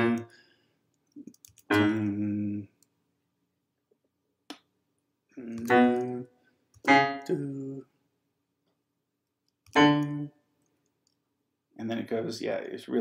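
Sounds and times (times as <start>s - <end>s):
electronic keyboard notes: 0.0s - 0.4s, 1.5s - 2.6s, 5.4s - 7.8s, 9.7s - 10.3s.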